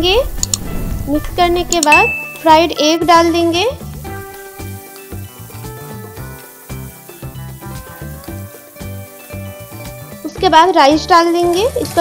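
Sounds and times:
stir-fry sizzling in a pan: 2.0s - 12.0s.

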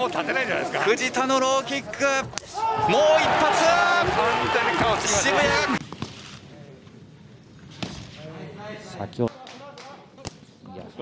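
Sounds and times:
excited shouting voices: 2.5s - 5.8s.

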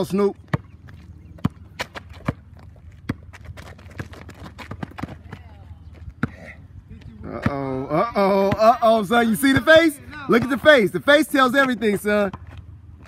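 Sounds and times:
basketball bouncing on asphalt: 0.0s - 7.8s, 8.4s - 13.0s.

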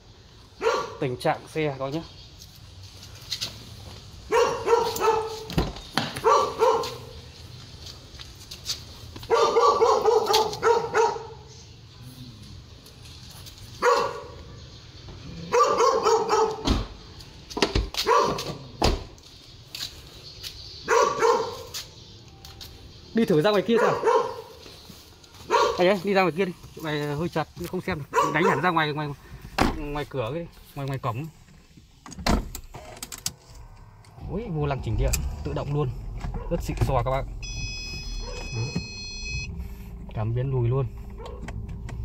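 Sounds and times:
dog barking: 0.6s - 1.0s, 4.3s - 5.5s, 6.2s - 7.2s, 9.3s - 11.5s, 13.8s - 14.5s, 15.4s - 16.7s, 18.0s - 18.6s, 20.8s - 21.7s, 23.6s - 24.6s, 25.4s - 26.0s, 28.1s - 28.8s, 38.2s - 38.8s, 41.2s - 41.4s.

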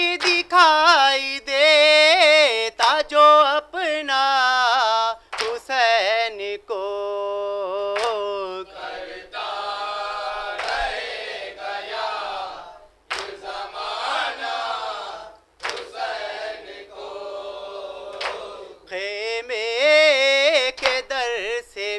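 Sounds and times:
lone high voice singing: 0.0s - 21.9s
men chanting together: 8.2s - 19.0s
hand slaps on chest: 15.6s - 15.9s, 18.2s - 18.5s.

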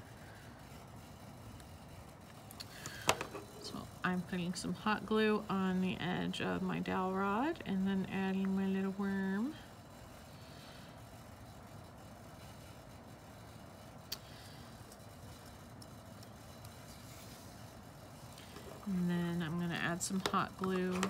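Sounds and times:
woman speaking: 3.6s - 9.6s, 18.8s - 21.0s.

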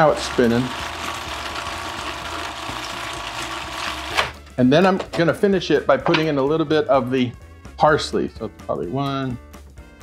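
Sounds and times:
food processor motor running: 0.0s - 4.4s.

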